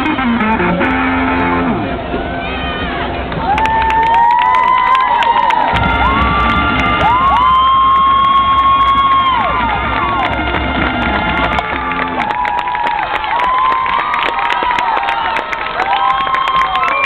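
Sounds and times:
marching band music: 0.0 - 3.5, 5.6 - 13.3
crowd cheering and whooping: 2.2 - 17.0.

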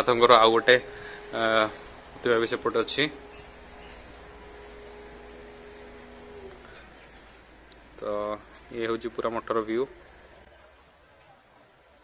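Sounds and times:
steady low hum: 0.0 - 11.1
birds calling softly: 3.1 - 8.7.

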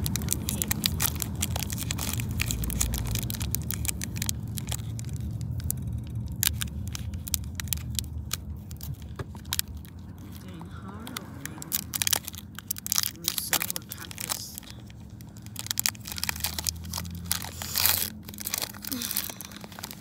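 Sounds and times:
car cabin rumble: 0.0 - 20.0
foil wrapper crinkling and tearing: 0.0 - 20.0.

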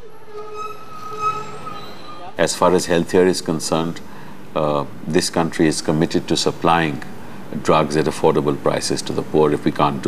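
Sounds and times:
high-pitched squealing tone: 0.0 - 2.6
street noise: 0.0 - 10.0.

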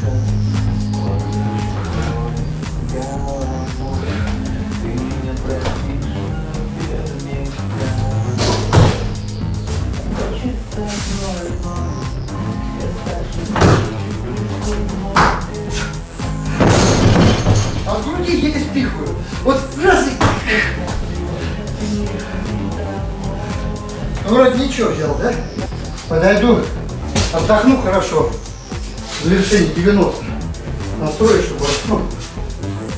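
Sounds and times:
background music: 0.0 - 32.9.

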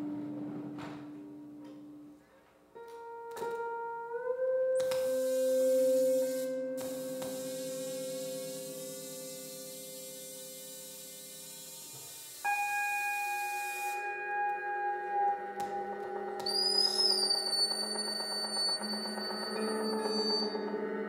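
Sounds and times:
pedal steel guitar: 0.0 - 21.0
electronic drone: 5.0 - 21.0.

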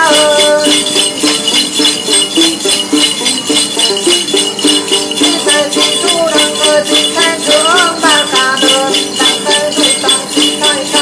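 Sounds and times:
man singing: 0.0 - 0.9, 5.2 - 11.0
bell rattle jingling: 0.0 - 11.0
plucked lute melody: 0.0 - 11.0.

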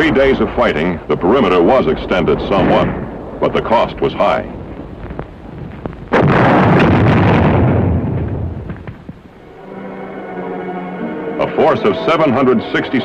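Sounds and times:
artillery shell explosion: 0.0 - 9.4
crackling battle noise: 0.0 - 9.5
music with held notes: 9.4 - 13.0.

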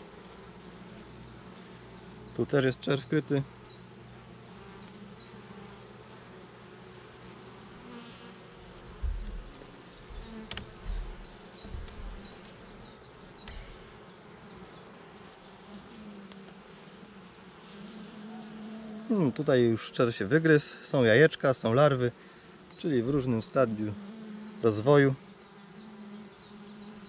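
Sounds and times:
bees buzzing: 0.0 - 27.0
low thuds of wooden frames: 8.8 - 14.0
sharp clicks of hive tool: 13.4 - 13.9.

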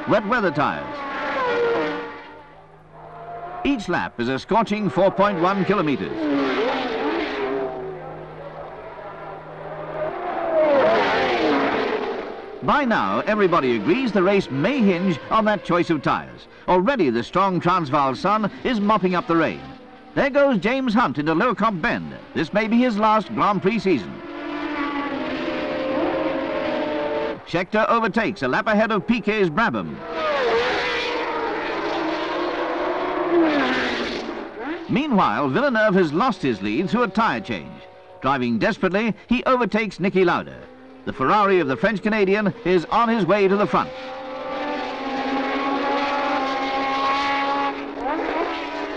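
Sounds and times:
race cars passing at speed: 0.0 - 48.9.

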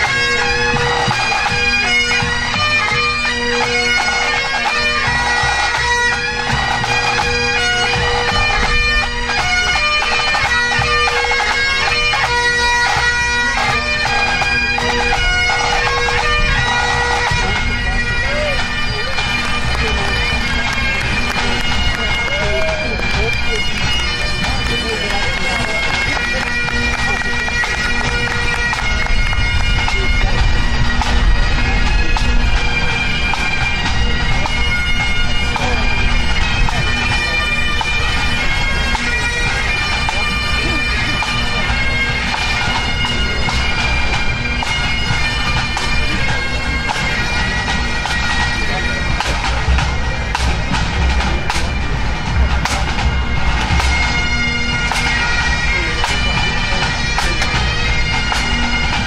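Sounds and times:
bagpipes playing tune over drones: 0.0 - 59.0
drums beating: 0.0 - 59.0.

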